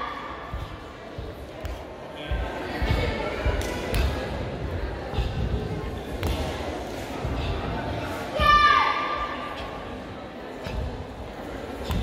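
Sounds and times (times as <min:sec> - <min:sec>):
voices in echoing hall: 0:00.0 - 0:12.0.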